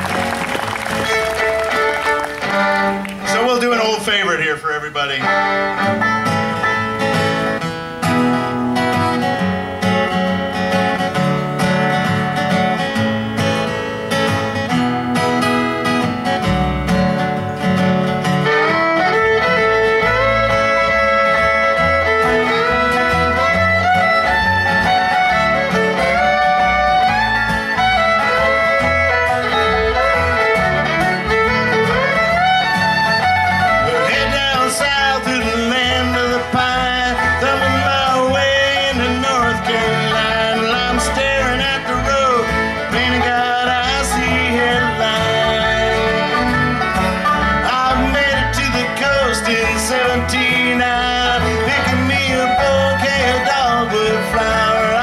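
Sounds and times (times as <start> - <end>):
acoustic guitar: 0.0 - 55.0
banjo: 0.0 - 55.0
bass: 0.0 - 55.0
fiddle sliding melody: 0.0 - 55.0.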